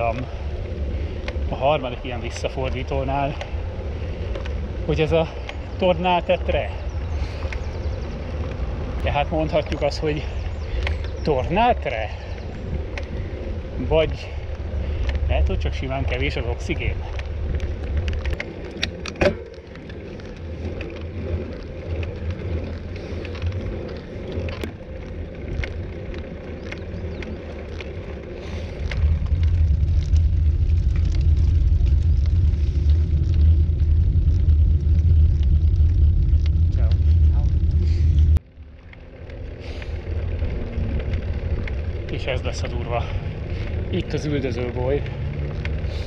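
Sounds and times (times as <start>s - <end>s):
road rumble: 0.0s - 46.0s
wind buffeting microphone: 0.0s - 46.0s.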